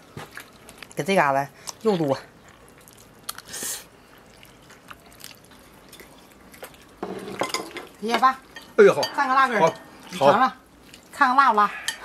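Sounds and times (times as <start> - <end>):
wet sounds: 0.0 - 12.0.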